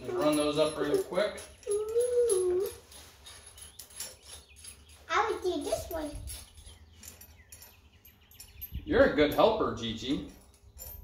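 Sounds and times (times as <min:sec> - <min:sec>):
metallic clicks of washers and nuts: 0:00.0 - 0:05.0
child's high-pitched vocalizations: 0:01.7 - 0:02.8.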